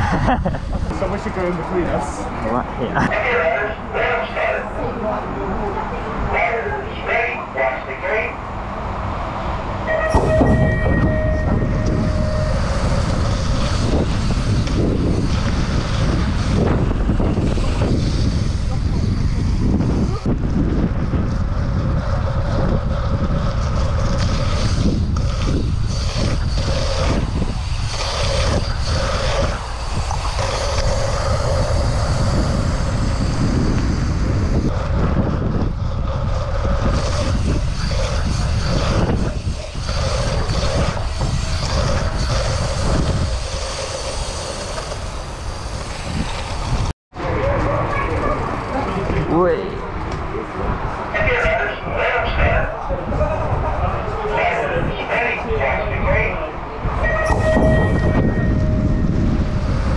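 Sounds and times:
wind rushing over microphone: 0:00.0 - 0:59.9
bike tyres rolling on wet track: 0:20.0 - 0:46.8.

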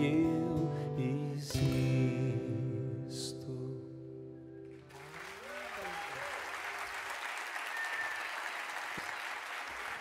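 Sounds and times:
acoustic guitar strummed chords: 0:00.0 - 0:04.7.

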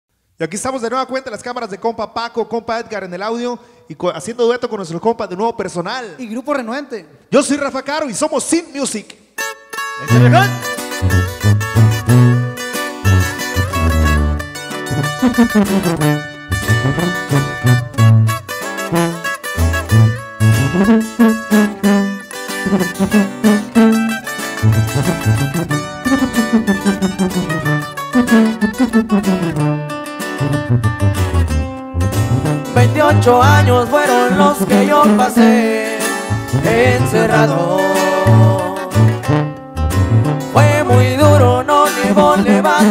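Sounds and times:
electric lead guitar melody: 0:09.4 - 0:42.9
tuba bass line: 0:10.0 - 0:42.9.

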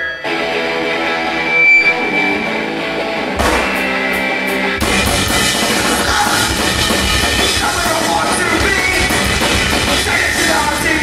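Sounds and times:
electric guitar chords: 0:00.0 - 0:11.0
drums and bass: 0:03.3 - 0:11.0
cymbal hits: 0:03.4 - 0:04.3.

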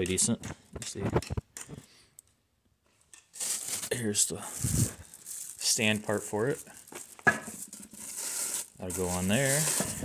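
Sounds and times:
plastic wrapping rustling: 0:03.3 - 0:10.0.

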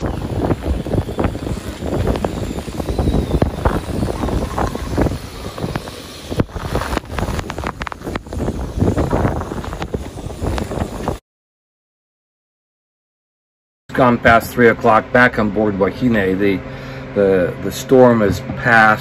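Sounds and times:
wind gusting against microphone: 0:00.0 - 0:11.2.

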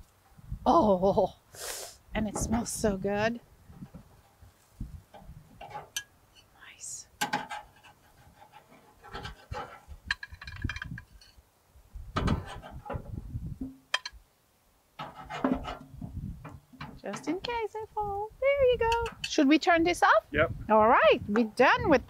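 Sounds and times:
metal spatula scraping grill grate: 0:07.2 - 0:11.4, 0:12.2 - 0:13.2, 0:15.0 - 0:17.5.

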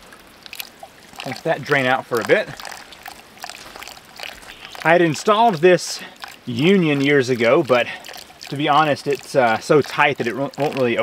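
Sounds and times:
water pouring from a tank: 0:00.0 - 0:11.0.

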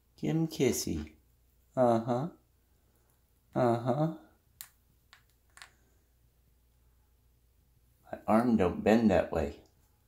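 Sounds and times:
man saying uh-huh: 0:01.8 - 0:02.4, 0:03.6 - 0:04.3.

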